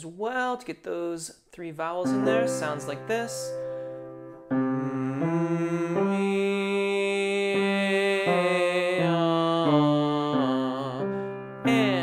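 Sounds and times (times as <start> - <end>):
man singing scale: 2.0 - 3.6.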